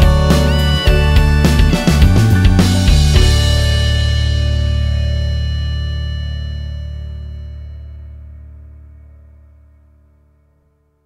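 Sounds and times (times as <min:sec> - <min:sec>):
band chord ringing out: 0:00.0 - 0:10.4.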